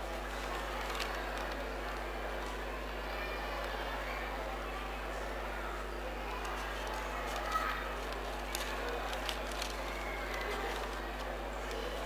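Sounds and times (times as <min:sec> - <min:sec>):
paper rustling: 0:00.7 - 0:01.6, 0:06.4 - 0:12.0.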